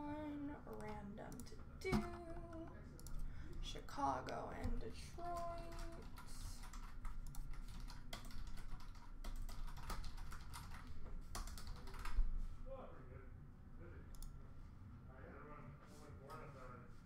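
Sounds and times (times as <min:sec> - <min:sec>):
typing on computer keyboard: 0:05.2 - 0:12.3.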